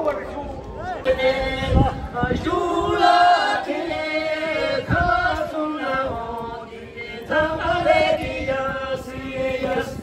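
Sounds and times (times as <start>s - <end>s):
group singing folk song in unison: 1.0s - 10.0s.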